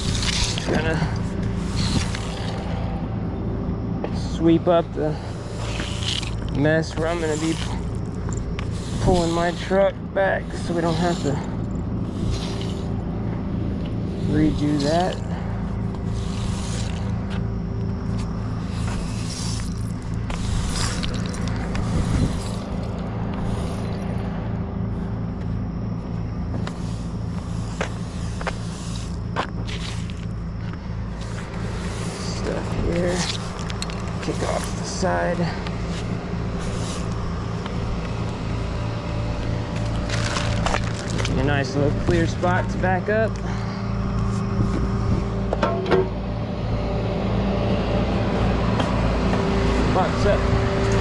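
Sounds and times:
broom sweeping on concrete: 0.0s - 3.0s, 5.1s - 24.3s, 26.5s - 42.8s
diesel truck engine idling: 0.0s - 51.0s.

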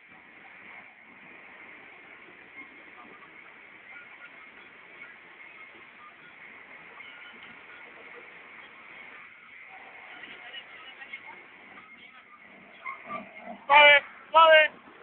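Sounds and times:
bus engine and road noise: 0.0s - 15.0s.

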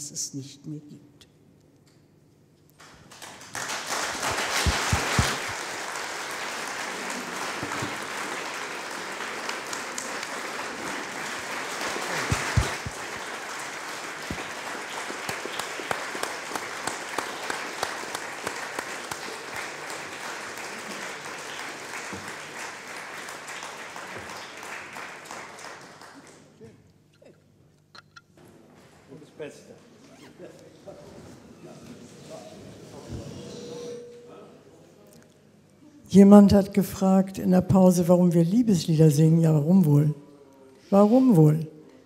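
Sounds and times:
audience applauding: 2.8s - 26.6s.

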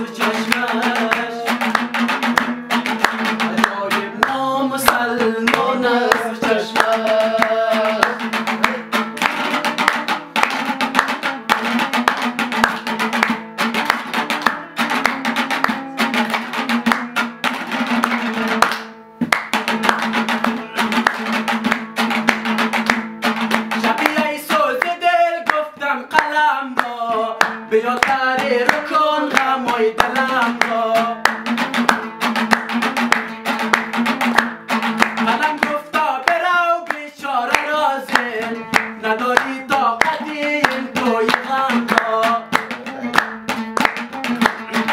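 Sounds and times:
man singing: 0.0s - 11.8s, 20.0s - 22.7s, 23.3s - 44.9s
hand clapping in time: 0.0s - 44.9s
lute strummed: 0.0s - 44.9s.

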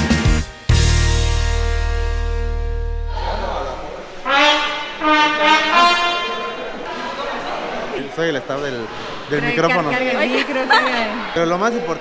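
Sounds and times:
murmur of voices: 3.1s - 12.0s
trumpet playing held notes: 4.1s - 6.8s.

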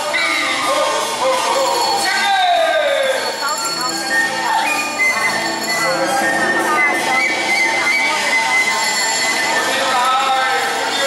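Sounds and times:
opera accompaniment music: 0.0s - 11.0s.

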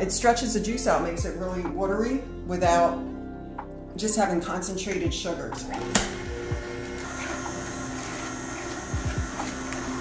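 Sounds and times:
juicer motor hum: 5.7s - 10.0s.

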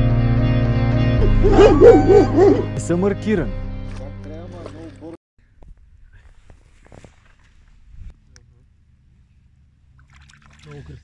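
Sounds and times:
small water splash: 6.7s - 7.9s, 9.8s - 11.0s
wind rumble on microphone: 7.5s - 8.2s.

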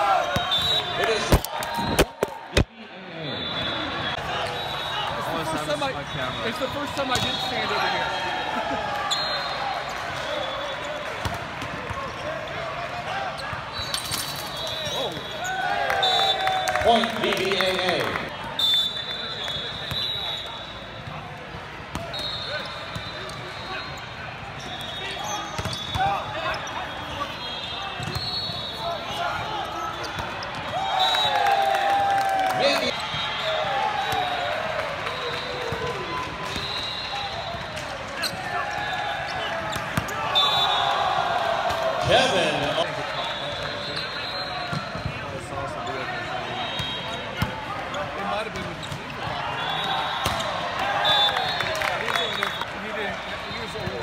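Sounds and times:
players shouting: 0.0s - 11.2s, 24.8s - 54.0s
shoe squeaks on court: 13.4s - 15.6s, 24.6s - 29.0s.

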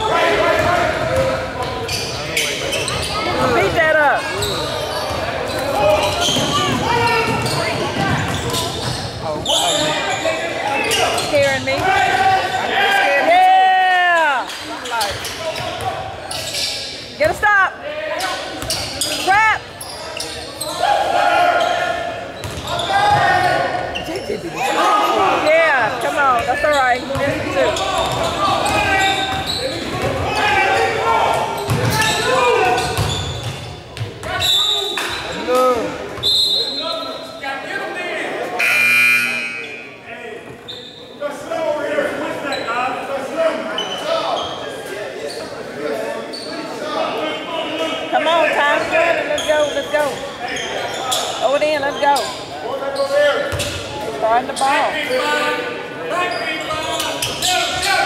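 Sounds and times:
voices calling out: 0.0s - 33.6s
sneakers squeaking on court: 0.5s - 12.6s, 14.4s - 17.4s, 18.2s - 20.8s, 21.6s - 35.5s, 48.7s - 55.0s
basketball bouncing: 6.3s - 9.0s, 22.4s - 23.2s, 27.1s - 27.4s, 31.7s - 32.1s, 32.9s - 34.2s.

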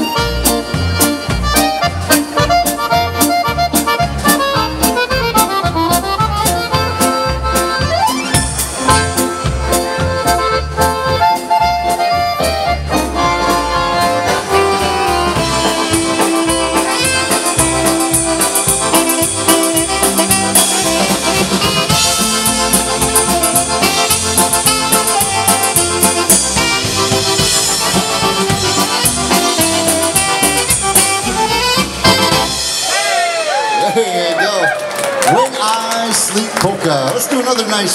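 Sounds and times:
piano accordion: 0.0s - 32.8s
saxophone: 0.0s - 33.8s
drum kit beat: 0.0s - 33.9s.

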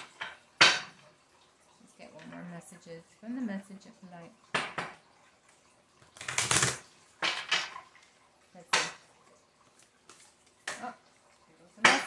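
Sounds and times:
cards being shuffled by hand: 6.0s - 6.8s.

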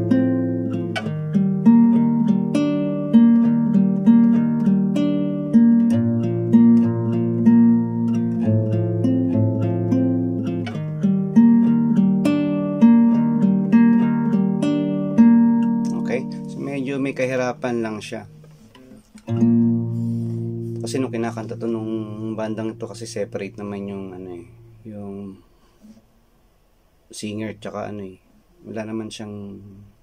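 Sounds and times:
fingerpicked classical guitar: 0.0s - 26.0s
man's voice: 15.9s - 18.4s, 20.8s - 25.4s.

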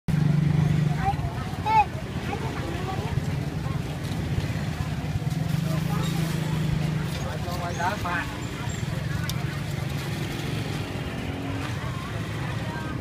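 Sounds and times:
vehicle engine humming: 0.1s - 13.0s
people talking faintly: 0.4s - 13.0s.

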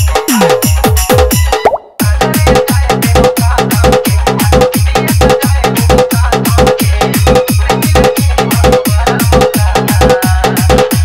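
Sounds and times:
dj dance remix: 0.0s - 11.0s
heavy pitch-dropping kick drum: 0.0s - 11.0s
quick rising blip: 1.6s - 1.9s.

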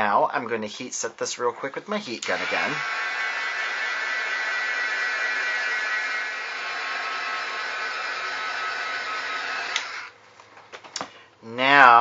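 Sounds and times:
heat gun blowing air: 2.1s - 10.2s.

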